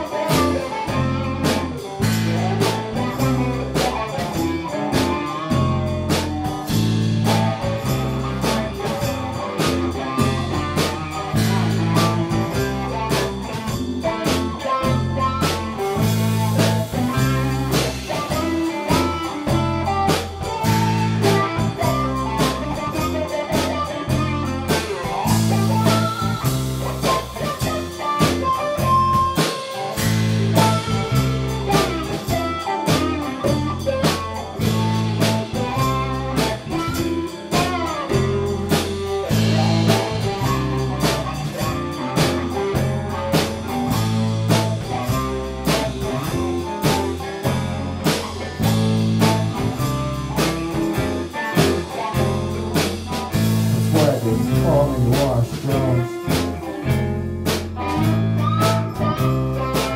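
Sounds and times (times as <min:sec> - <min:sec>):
lead guitar bending notes: 0:00.0 - 0:59.9
live blues-rock band: 0:00.0 - 0:59.9.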